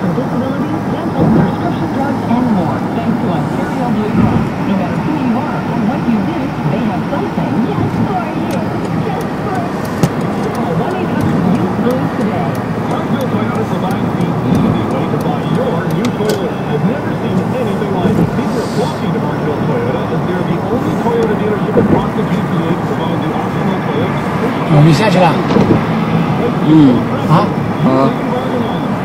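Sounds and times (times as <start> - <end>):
chatter of voices: 0.0 - 29.0
moving road vehicle noise: 0.0 - 29.0.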